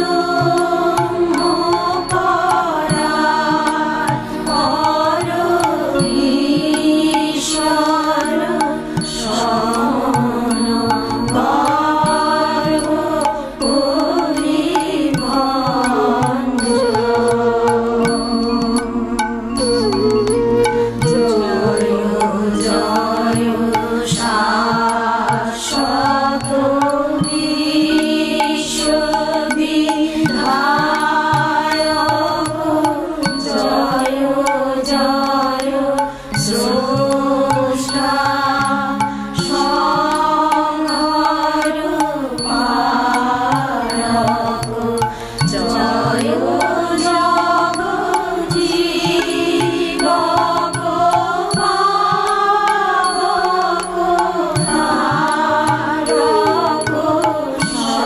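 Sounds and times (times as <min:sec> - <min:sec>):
light instrumental accompaniment: 0:00.0 - 0:58.0.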